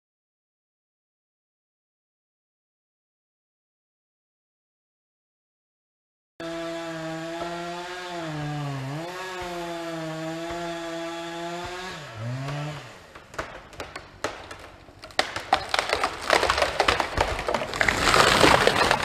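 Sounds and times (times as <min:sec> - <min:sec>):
chainsaw cutting at high revs: 0:06.4 - 0:18.4
wood cracking and splintering: 0:06.5 - 0:19.0.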